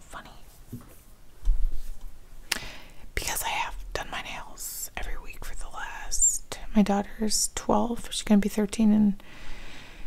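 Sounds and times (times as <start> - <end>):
woman whispering: 0.0 - 0.5, 3.1 - 9.2.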